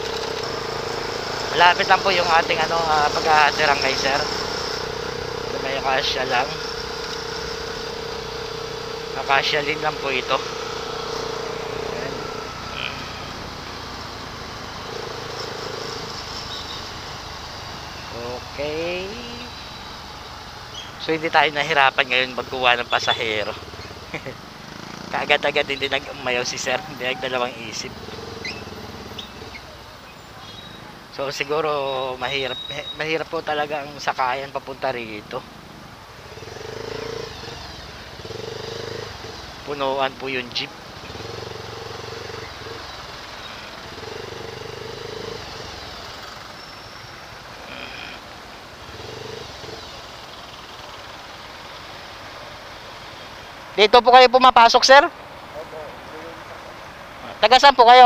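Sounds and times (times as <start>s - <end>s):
motorcycle engine and road noise: 0.0s - 58.0s.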